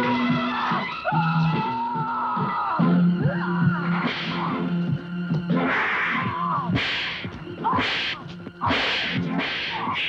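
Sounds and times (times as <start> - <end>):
film background score: 0.0 - 10.0.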